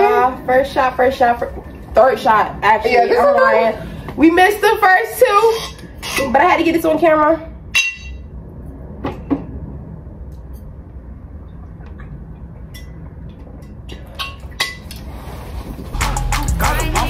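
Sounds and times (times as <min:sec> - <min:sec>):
glass bottle and glasses clinking: 0:07.8 - 0:08.2.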